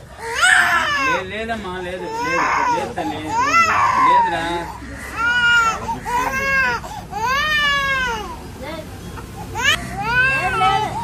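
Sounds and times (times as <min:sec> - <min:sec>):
baby crying: 0:00.2 - 0:01.3, 0:02.0 - 0:08.4, 0:09.5 - 0:11.0.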